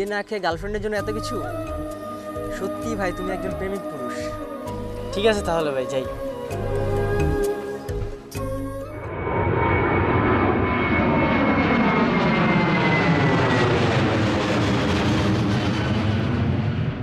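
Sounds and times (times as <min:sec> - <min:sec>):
high engine whine falling in pitch: 0:07.0 - 0:17.0
jet engines roaring: 0:08.9 - 0:17.0.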